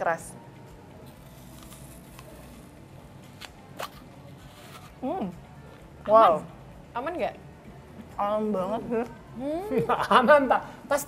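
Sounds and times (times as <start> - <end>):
apple crunching: 1.1 - 5.0.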